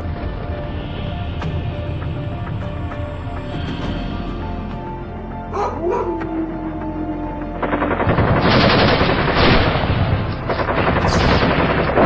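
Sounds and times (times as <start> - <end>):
rapid sharp crackling: 7.5 - 12.0.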